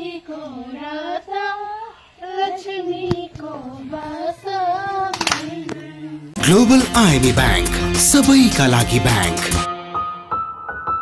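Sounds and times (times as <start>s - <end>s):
girls singing unaccompanied: 0.0s - 6.4s.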